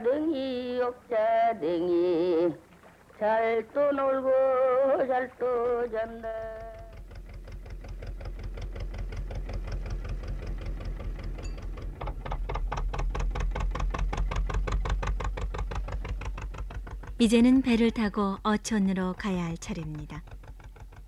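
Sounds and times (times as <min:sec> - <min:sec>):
motorboat engine chugging: 0:00.0 - 0:21.0.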